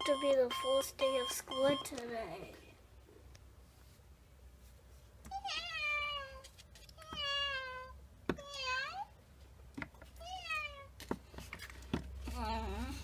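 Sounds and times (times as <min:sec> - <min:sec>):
cat meowing: 0:05.3 - 0:06.4.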